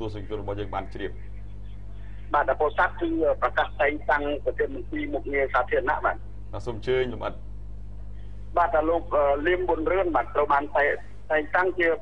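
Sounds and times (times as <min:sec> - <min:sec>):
steady low hum: 0:00.0 - 0:12.0
person talking: 0:01.8 - 0:07.4, 0:08.5 - 0:12.0.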